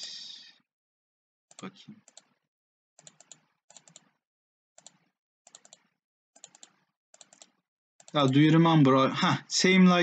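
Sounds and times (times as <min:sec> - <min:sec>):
faint computer mouse clicks: 0:03.0 - 0:04.1.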